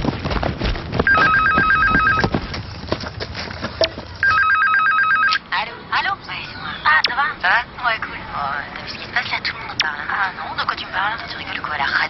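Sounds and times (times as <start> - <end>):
telephone ringing two-tone trill: 1.1 - 2.3, 4.2 - 5.4
voices: 5.4 - 12.0.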